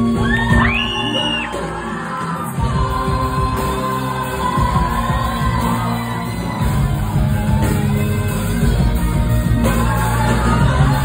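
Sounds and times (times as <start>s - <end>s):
crowd shouting and whooping: 0.0s - 11.0s
live band with singing: 0.0s - 11.0s.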